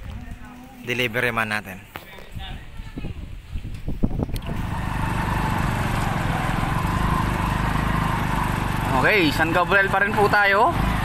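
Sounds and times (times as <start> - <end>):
small motorcycle engine running: 4.4 - 11.0
water rushing around wheels: 4.4 - 11.0.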